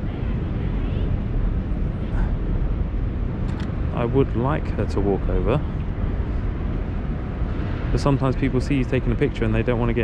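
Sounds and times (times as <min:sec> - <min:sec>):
low city rumble: 0:00.0 - 0:10.0.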